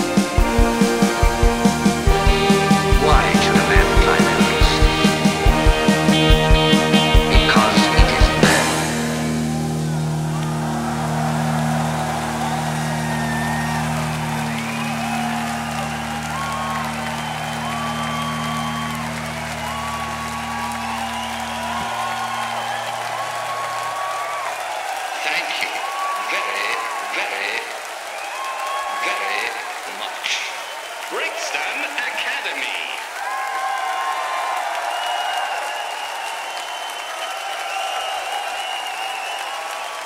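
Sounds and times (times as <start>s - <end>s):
crowd cheering and applauding: 0.0s - 40.0s
band holding final chord: 0.4s - 24.2s.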